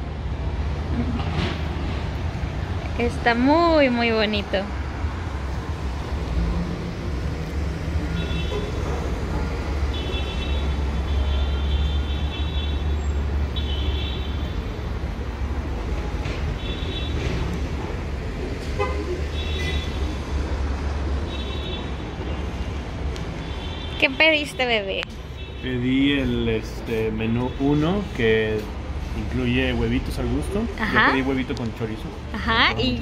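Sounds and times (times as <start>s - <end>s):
street traffic rumble: 0.0s - 33.0s.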